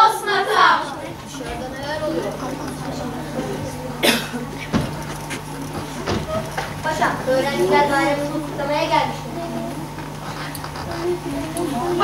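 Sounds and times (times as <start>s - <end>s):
loud cough: 4.0s - 4.8s.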